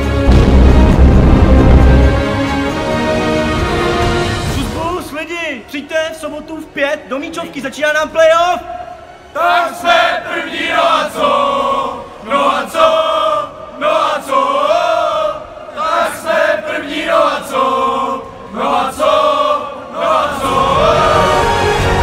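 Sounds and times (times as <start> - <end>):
music: 0.0 - 22.0
men chanting in unison: 9.3 - 22.0.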